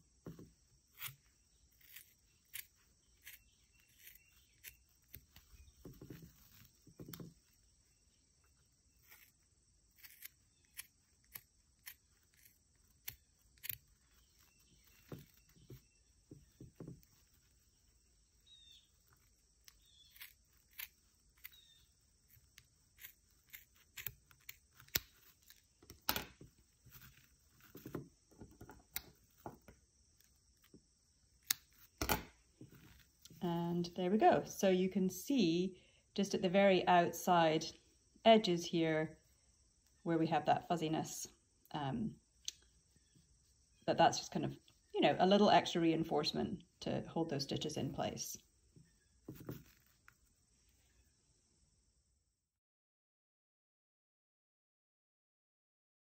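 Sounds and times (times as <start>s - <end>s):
scissors snipping wool: 0.9s - 7.4s, 9.0s - 16.0s, 18.5s - 26.4s.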